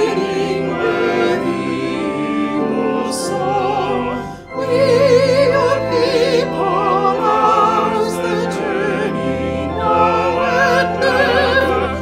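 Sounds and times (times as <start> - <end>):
church organ: 0.0 - 12.0
vocal quartet singing a hymn: 0.0 - 12.0.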